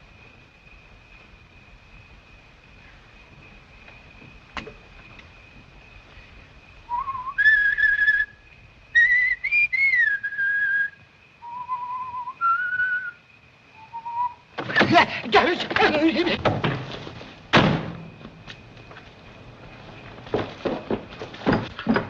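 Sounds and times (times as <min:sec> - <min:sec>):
person whistling a slow tune: 0:06.9 - 0:08.3, 0:09.0 - 0:13.2, 0:13.8 - 0:14.4
clatter of knocks: 0:14.6 - 0:18.6, 0:19.9 - 0:22.0.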